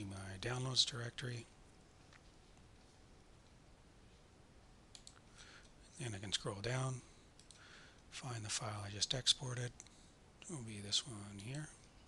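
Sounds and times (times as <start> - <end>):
computer mouse click: 4.9 - 5.3, 7.4 - 7.6.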